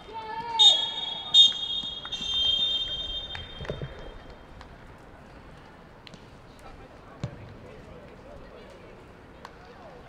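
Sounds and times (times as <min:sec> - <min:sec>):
referee's whistle long blast: 0:00.6 - 0:03.9.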